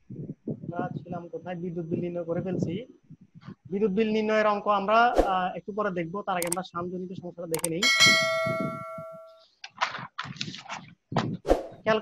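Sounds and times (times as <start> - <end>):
bell-like chime ding: 7.8 - 9.4.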